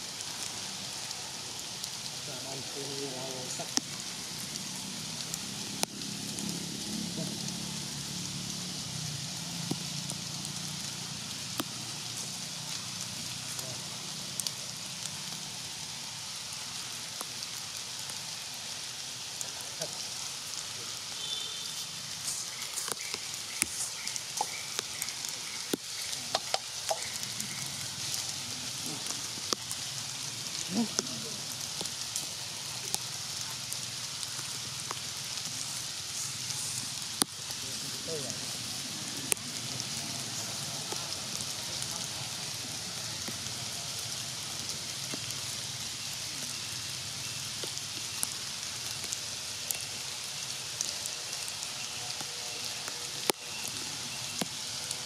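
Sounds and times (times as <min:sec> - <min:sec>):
steady outdoor hiss: 0:00.0 - 0:55.0.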